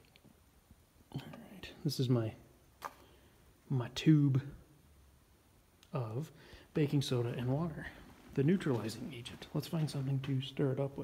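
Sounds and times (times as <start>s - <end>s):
man speaking softly: 1.1s - 2.4s, 5.9s - 11.0s.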